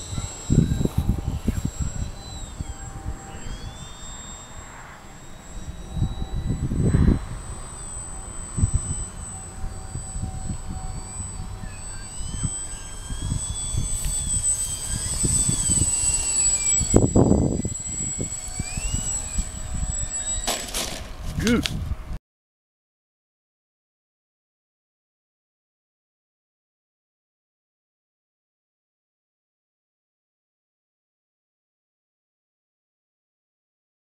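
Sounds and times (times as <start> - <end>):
model plane motor whining: 0.0 - 22.2
wind buffeting microphone: 0.0 - 22.2.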